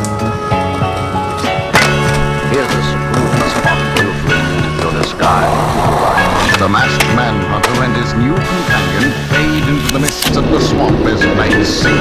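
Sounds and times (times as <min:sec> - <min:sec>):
skateboard crack: 0:00.0 - 0:10.4
skateboard grinding scrape: 0:01.8 - 0:07.1
music with beat and vocals: 0:02.4 - 0:12.0.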